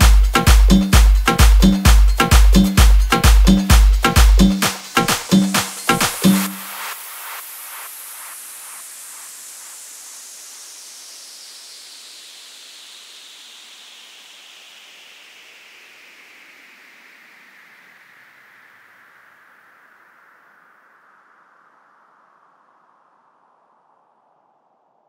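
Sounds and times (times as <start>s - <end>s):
echoing beat: 0.0s - 6.8s
white-noise sweep: 0.0s - 25.0s.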